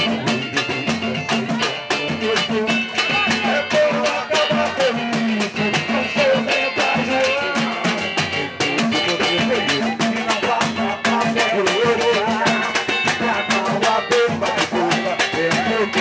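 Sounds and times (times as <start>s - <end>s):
man singing through microphone: 0.0s - 16.0s
samba drums and percussion: 0.0s - 16.0s
small guitar strumming: 0.0s - 16.0s.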